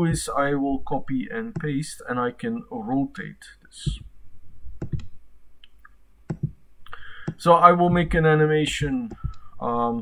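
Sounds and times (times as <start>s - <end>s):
keyboard and mouse clicks: 4.8s - 6.6s, 7.2s - 8.1s, 8.8s - 9.5s.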